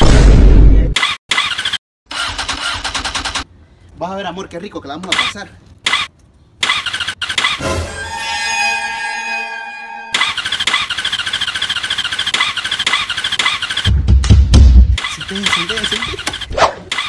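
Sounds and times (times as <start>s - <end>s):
motorcycle starter cranking: 1.3s - 3.5s, 10.2s - 13.9s, 15.0s - 17.0s.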